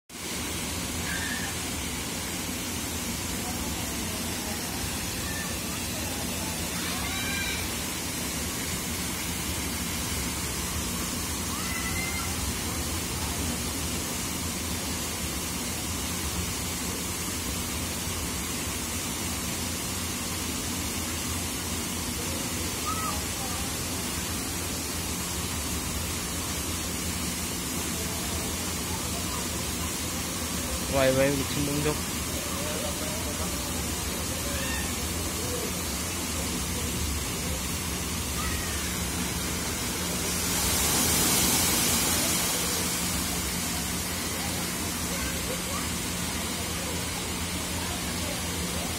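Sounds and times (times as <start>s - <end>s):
water spraying into pool: 0.2s - 48.9s
water splashing into pool: 38.4s - 44.5s.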